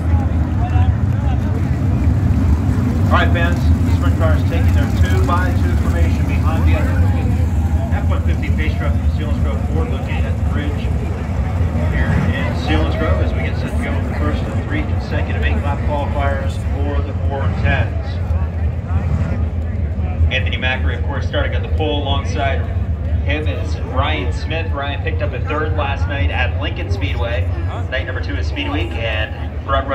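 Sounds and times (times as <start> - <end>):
people talking: 0.0 - 1.8, 3.0 - 19.0, 19.7 - 29.9
race car engines rumbling: 0.0 - 29.9.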